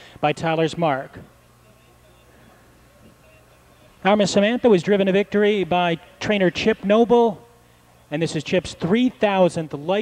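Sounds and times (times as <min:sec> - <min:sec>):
low electrical hum: 0:00.0 - 0:10.0
faint distant voices: 0:01.2 - 0:04.1.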